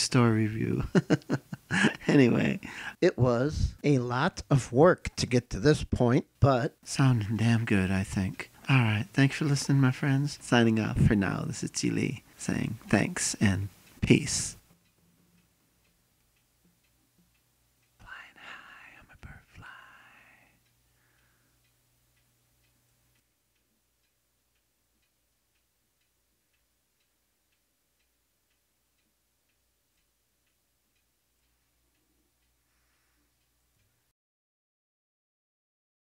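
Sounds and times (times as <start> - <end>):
faint ticking: 0.1 - 3.0, 3.7 - 34.1
whispered voice: 18.0 - 20.5.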